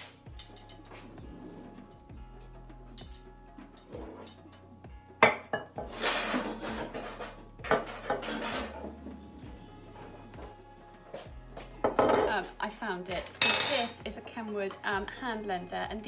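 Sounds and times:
bowls and bottle rustling and scraping: 0:00.0 - 0:04.7, 0:05.4 - 0:12.6
background music: 0:00.0 - 0:16.0.

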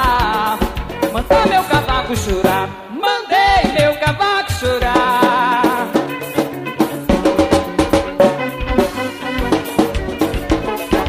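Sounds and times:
band playing instrumental passage: 0:00.0 - 0:02.9, 0:03.5 - 0:11.0
drums and percussion beat: 0:00.0 - 0:11.0.

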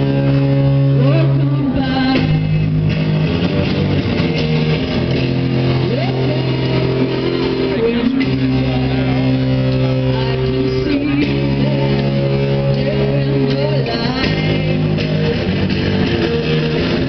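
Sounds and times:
guitar chords: 0:00.0 - 0:17.0.

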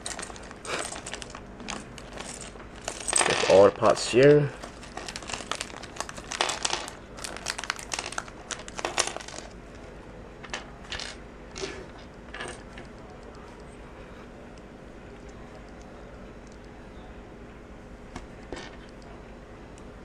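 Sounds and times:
plastic bag crinkling: 0:00.0 - 0:09.6
plastic bricks shaken out: 0:04.6 - 0:09.6.

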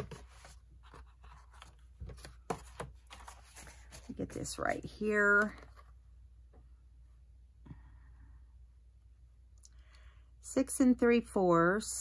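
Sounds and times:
paper being handled: 0:00.0 - 0:05.8.

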